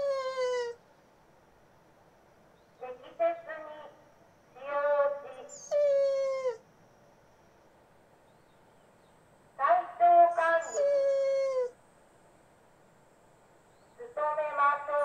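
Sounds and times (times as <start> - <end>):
dog whining howls: 0.0 - 0.8, 5.5 - 6.6, 10.4 - 11.8.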